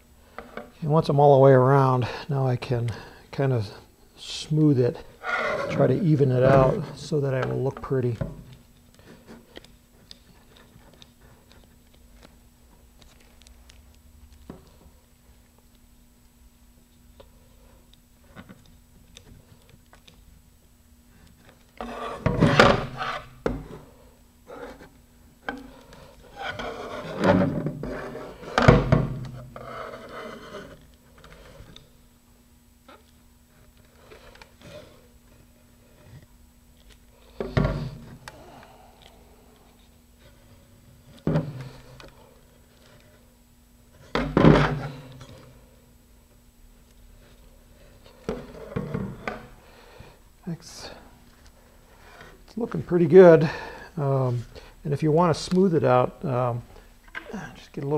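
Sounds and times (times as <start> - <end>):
faint steady hum: 0.0 - 57.9.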